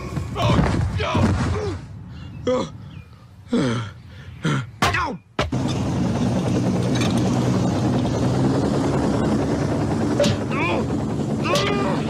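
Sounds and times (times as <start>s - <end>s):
helicopter rotor running: 5.4s - 12.0s.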